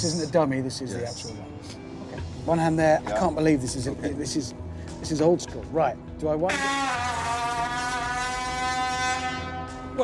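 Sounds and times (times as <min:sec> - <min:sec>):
steady droning tone: 0:06.5 - 0:10.0.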